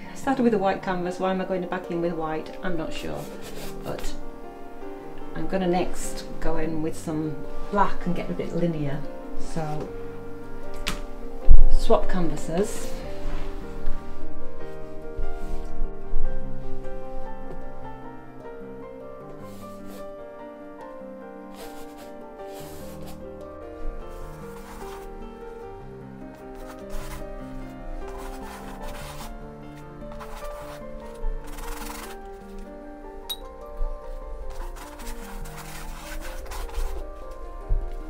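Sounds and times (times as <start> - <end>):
background music slow held notes: 0.0 - 38.0
paintbrush scrubbing on canvas: 3.1 - 4.1, 21.5 - 23.2, 24.1 - 25.1, 26.6 - 27.3, 28.1 - 29.4, 30.1 - 32.2, 34.1 - 37.4.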